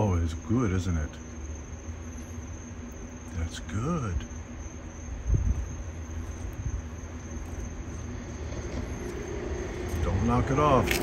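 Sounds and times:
constant low rumble: 0:00.0 - 0:11.0
crickets chirring: 0:00.0 - 0:11.0.

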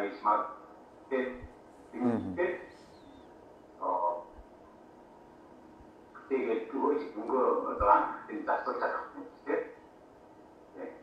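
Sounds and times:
man speaking over call: 0:01.1 - 0:02.7, 0:06.3 - 0:09.8.

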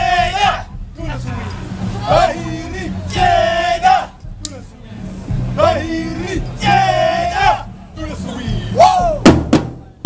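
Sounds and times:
marching drums unison hits: 0:08.9 - 0:10.0.

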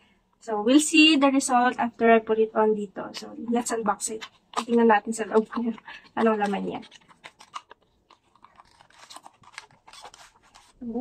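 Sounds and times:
plastic wrapping crinkling: 0:03.1 - 0:11.0
cardboard box being opened: 0:05.4 - 0:10.8.

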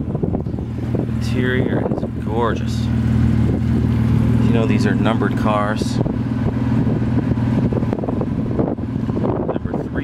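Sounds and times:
car engine idling: 0:00.0 - 0:10.0
wind buffeting microphone: 0:00.0 - 0:10.0.

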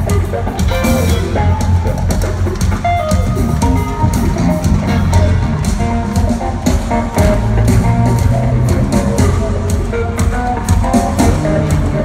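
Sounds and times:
drum beat: 0:00.0 - 0:12.0
live rock band playing: 0:00.0 - 0:12.0.

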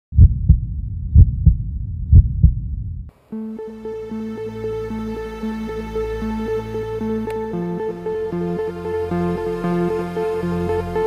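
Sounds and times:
heartbeat thumps: 0:00.1 - 0:03.1
low rumble: 0:00.1 - 0:03.1.

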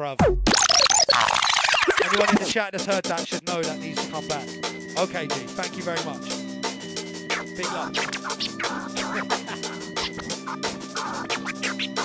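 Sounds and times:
beat with bass notes: 0:00.2 - 0:02.5, 0:06.6 - 0:12.0
dj scratching: 0:00.5 - 0:02.6, 0:07.3 - 0:12.0.

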